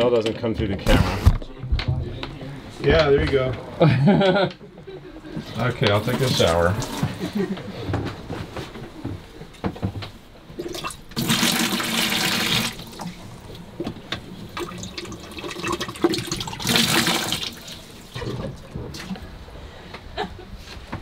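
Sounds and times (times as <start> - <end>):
toilet flushing water rushing: 5.9 - 7.1, 10.6 - 13.5, 14.4 - 19.2.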